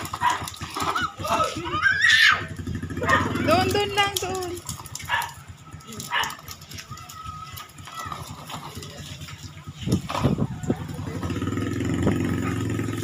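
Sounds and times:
plastic toy wheels rattling on concrete: 0:00.0 - 0:13.0.

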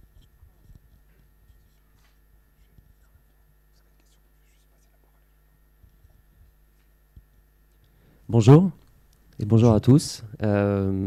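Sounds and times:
faint whispering: 0:02.5 - 0:06.5.

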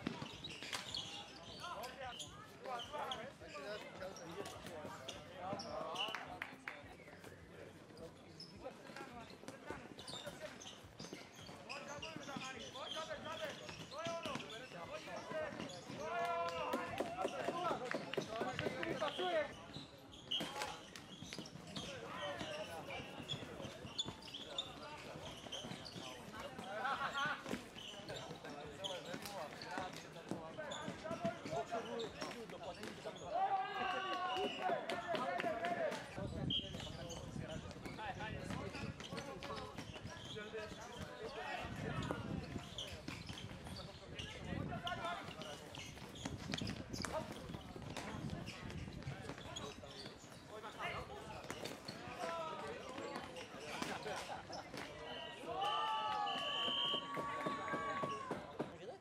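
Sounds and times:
players' footsteps: 0:00.0 - 0:59.0.

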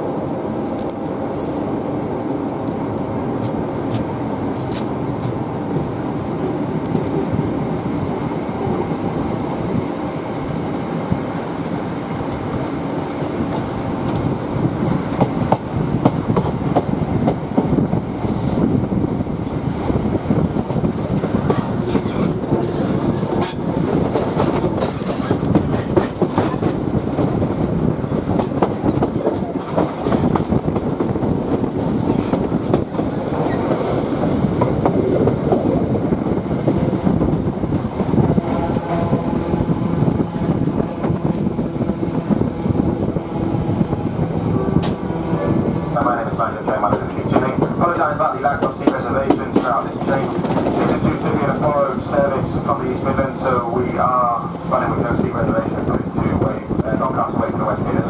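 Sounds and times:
train rumble: 0:00.0 - 0:58.0.

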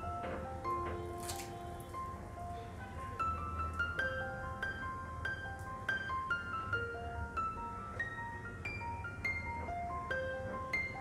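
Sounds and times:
fried pastry crackling: 0:01.0 - 0:01.9.

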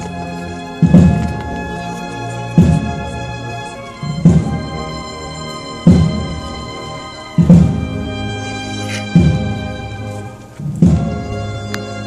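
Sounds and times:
bass drum strike: 0:04.1 - 0:04.8, 0:05.8 - 0:06.5, 0:07.4 - 0:08.1, 0:10.7 - 0:11.3.

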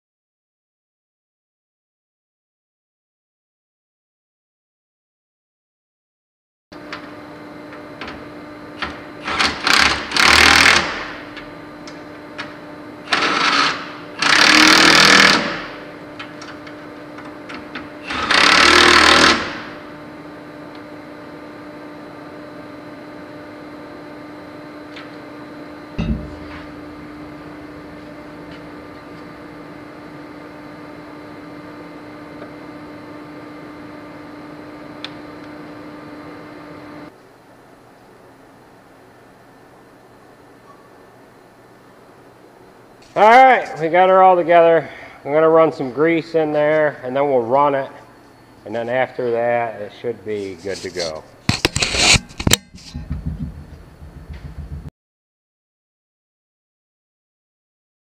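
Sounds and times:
steady low hum: 0:19.3 - 0:54.9
impact driver hammering: 0:26.0 - 0:26.6.

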